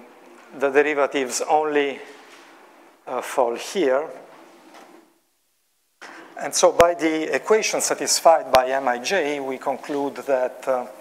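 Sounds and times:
person speaking: 0.0s - 2.3s, 3.0s - 4.4s, 6.0s - 11.0s
faint room hum: 0.0s - 11.0s.

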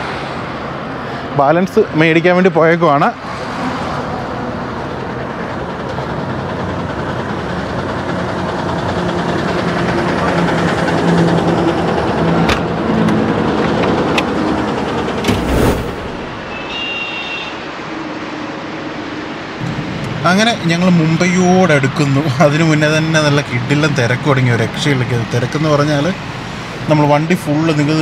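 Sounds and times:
highway traffic: 0.0s - 28.0s
heavy thump: 15.2s - 16.5s.

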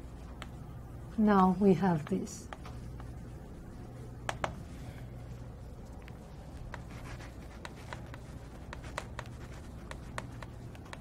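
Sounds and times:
steady low hum: 0.0s - 11.0s
chalk tapping on board: 6.7s - 11.0s.

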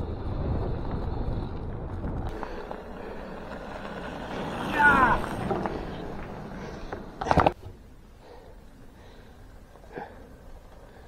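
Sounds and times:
bike tyres rolling on gravel: 0.0s - 11.0s.

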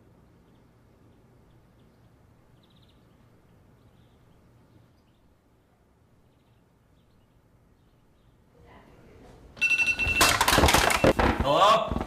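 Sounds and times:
smartphone ringtone: 9.6s - 11.1s.

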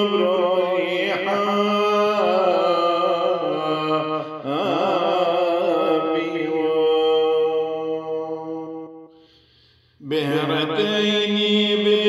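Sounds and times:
man singing a hymn: 0.0s - 9.0s, 10.0s - 12.0s.

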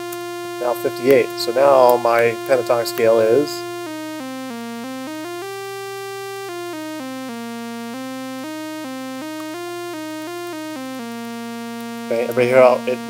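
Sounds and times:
synthesizer playing random notes: 0.0s - 13.0s.

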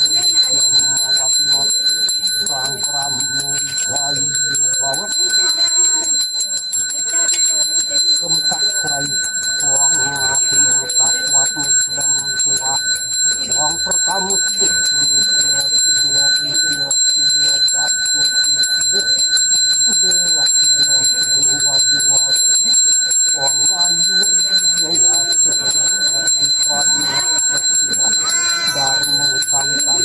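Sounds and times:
man's voice: 0.0s - 5.7s, 8.0s - 30.0s
hand bell ringing: 0.0s - 30.0s.

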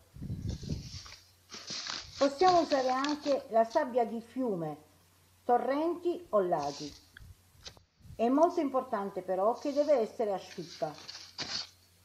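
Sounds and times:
sand pouring into basket: 0.8s - 3.3s.

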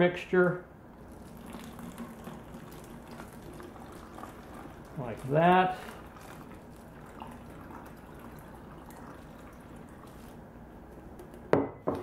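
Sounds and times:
water pouring into plastic bottle: 1.0s - 10.4s.

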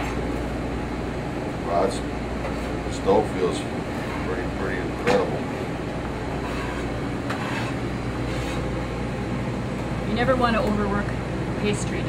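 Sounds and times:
ventilation fan hum: 0.0s - 12.0s.

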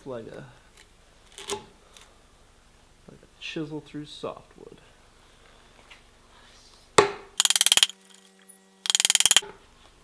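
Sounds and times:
rapid clicking: 7.4s - 7.9s, 8.9s - 9.4s.

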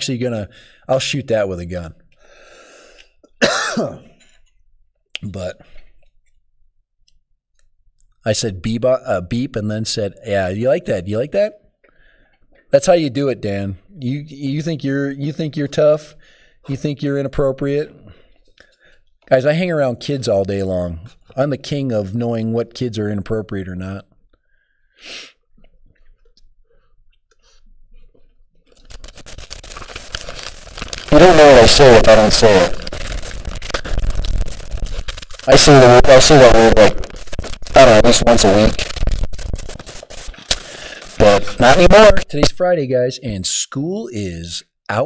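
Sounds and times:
faint breath: 0.5s - 0.9s, 2.2s - 3.2s, 11.8s - 12.6s, 16.2s - 16.6s, 24.4s - 25.4s, 40.6s - 41.2s
man coughing: 3.4s - 4.4s.

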